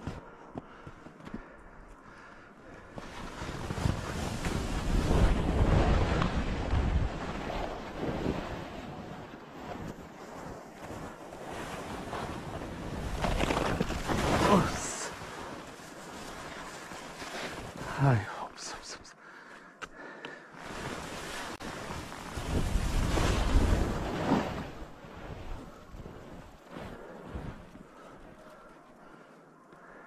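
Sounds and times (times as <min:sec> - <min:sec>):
skis scraping through snow: 0:02.9 - 0:18.2, 0:20.6 - 0:29.3
wind on microphone: 0:21.6 - 0:26.5.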